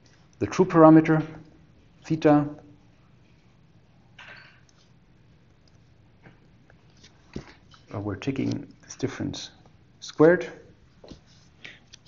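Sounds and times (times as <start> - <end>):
man speaking: 0.4 - 2.6, 7.9 - 10.8.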